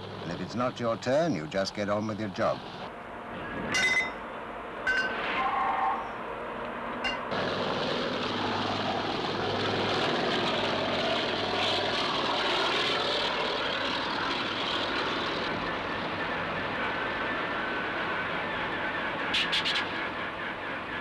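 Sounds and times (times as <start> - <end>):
helicopter engine and rotor: 0.0 - 5.2, 6.2 - 21.0.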